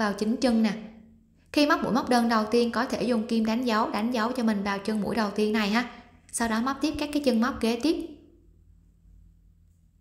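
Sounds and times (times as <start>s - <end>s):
woman's voice: 0.0s - 8.3s
low hum: 4.2s - 10.0s.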